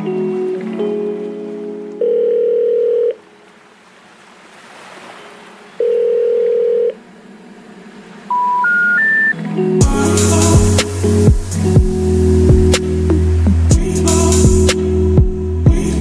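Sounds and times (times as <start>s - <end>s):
telephone line beeps: 2.0s - 3.2s, 5.8s - 7.0s, 8.3s - 9.4s.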